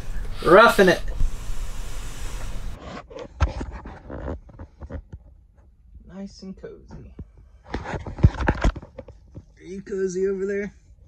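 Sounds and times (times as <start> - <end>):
steady hiss: 0.0 - 2.8
bedding rustling and scraping: 0.0 - 5.8, 7.2 - 9.7.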